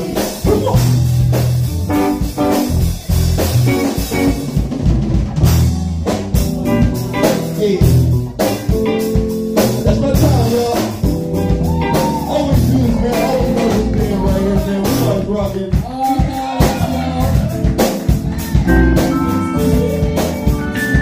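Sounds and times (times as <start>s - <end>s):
drum kit: 0.0s - 21.0s
electric bass line: 0.0s - 21.0s
keyboards: 0.0s - 21.0s
live band playing: 0.0s - 21.0s.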